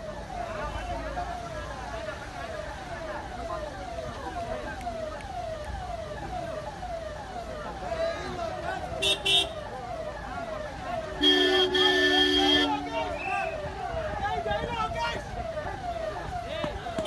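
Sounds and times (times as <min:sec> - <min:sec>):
police siren: 0:00.0 - 0:17.0
vehicle horn toots: 0:11.2 - 0:12.8.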